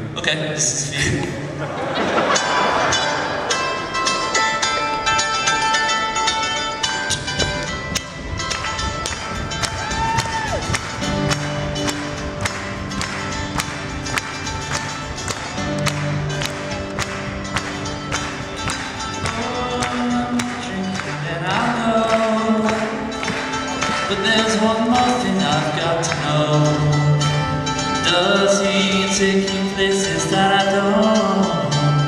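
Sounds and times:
acoustic guitar strumming: 2.0 - 32.0.

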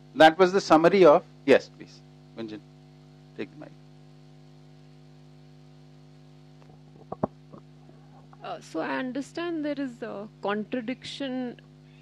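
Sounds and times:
electrical hum: 0.0 - 12.0
sharp thumps: 6.6 - 7.7
microphone handling knocks: 6.6 - 8.0.

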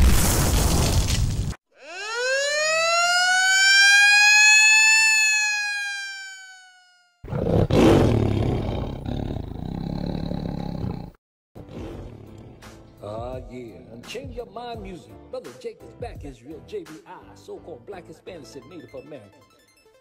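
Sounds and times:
siren-like tone sweeping up: 1.8 - 7.3.

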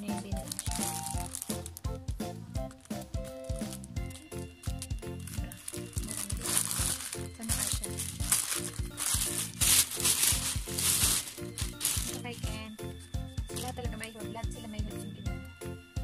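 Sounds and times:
music with steady beat: 0.0 - 16.0
packaging crinkling: 0.1 - 1.9, 2.7 - 12.4.

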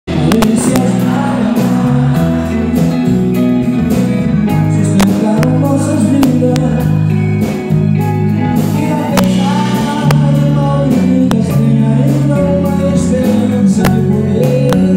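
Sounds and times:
man singing into microphone: 0.1 - 7.2, 8.6 - 14.9
live band playing: 0.1 - 14.9.

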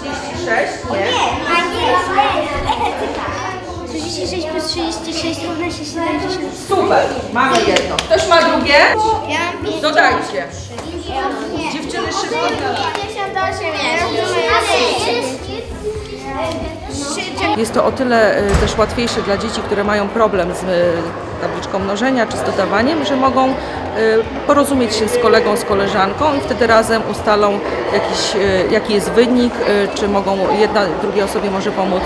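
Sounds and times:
children talking: 0.0 - 32.0.

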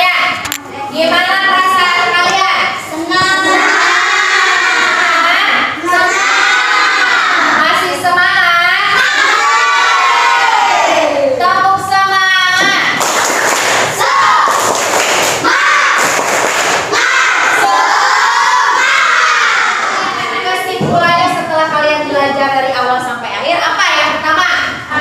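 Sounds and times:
children chanting and shouting: 0.7 - 21.7
sharp claps or thumps: 12.6 - 17.0.

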